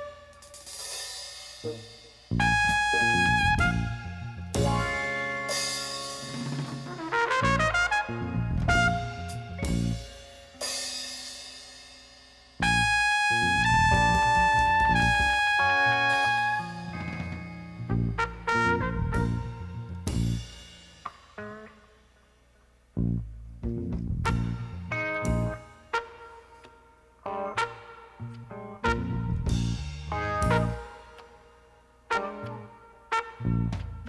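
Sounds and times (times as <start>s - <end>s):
instrumental music: 0.0s - 22.2s, 23.0s - 34.0s.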